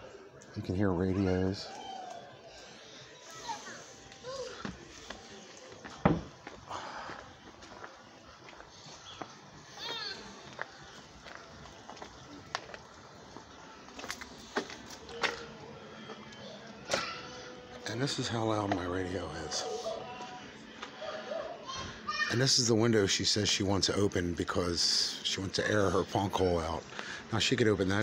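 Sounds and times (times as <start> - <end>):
faint voices of children: 0.0 - 6.0, 6.6 - 23.2
distant radio music: 0.0 - 28.0.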